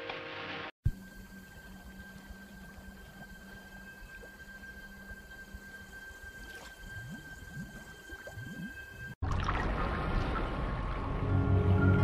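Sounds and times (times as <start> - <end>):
steady hum: 0.1 - 9.2
water on pond surface: 0.9 - 11.2.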